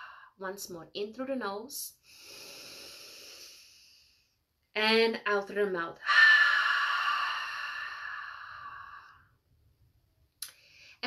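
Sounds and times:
woman exhaling through mouth: 6.0s - 9.3s.

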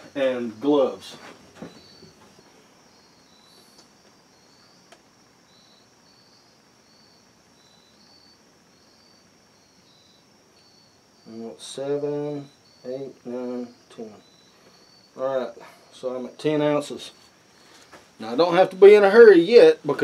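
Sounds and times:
insect chirping: 0.0s - 20.0s
low background hiss: 0.0s - 20.0s.

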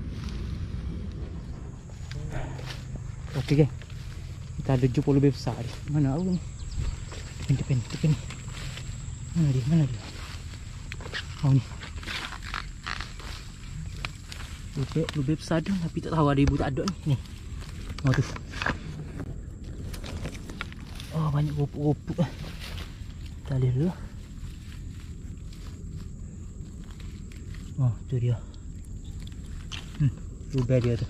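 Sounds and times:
dry grass rustling: 0.0s - 31.0s
steady low rumble: 0.0s - 31.0s.

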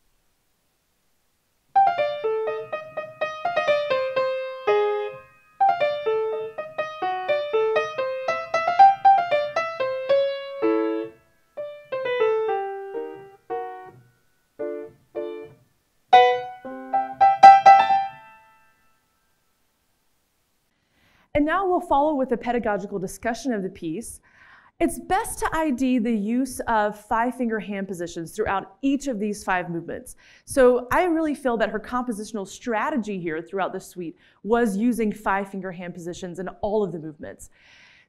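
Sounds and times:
upright piano playing: 1.7s - 14.0s, 14.6s - 18.6s.

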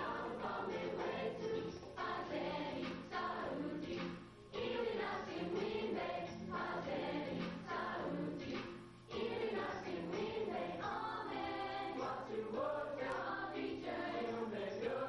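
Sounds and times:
youth choir singing: 0.0s - 15.0s.

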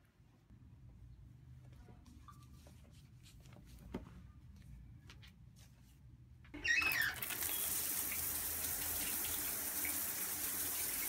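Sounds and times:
shower spraying water: 6.6s - 11.0s.

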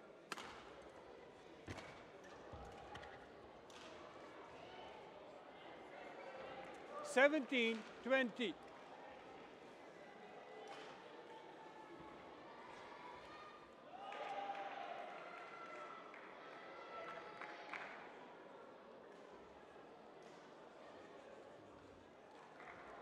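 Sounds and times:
murmur of distant voices: 0.0s - 14.1s.

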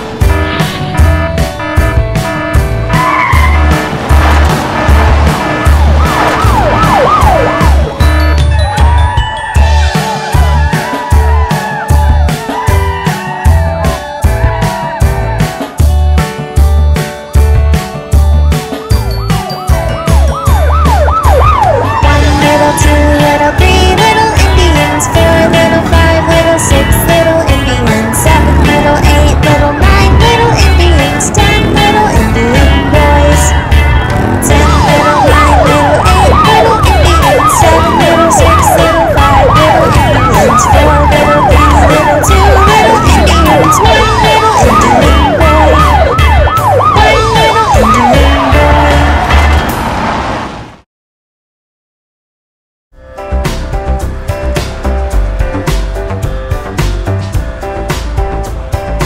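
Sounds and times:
background music with steady beat: 0.0s - 49.6s, 53.0s - 59.0s
cartoon police siren: 1.0s - 3.9s, 4.8s - 15.0s, 18.8s - 49.6s.

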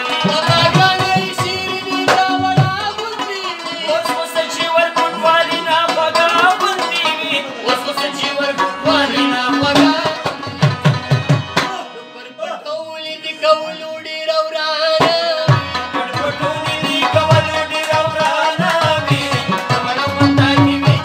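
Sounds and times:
harmonium melody: 0.0s - 21.0s
man singing: 0.0s - 21.0s.

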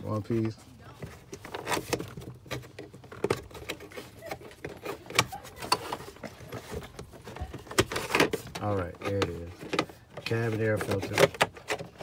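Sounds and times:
plastic clicks and scrapes: 0.4s - 12.0s.

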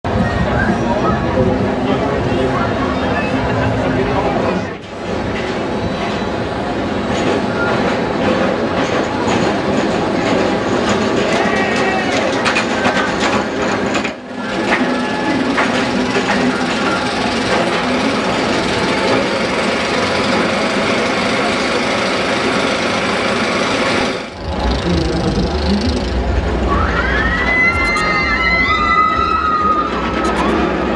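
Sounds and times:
fairground crowd noise: 0.0s - 30.9s
roller coaster rumbling and clattering: 0.1s - 30.9s.

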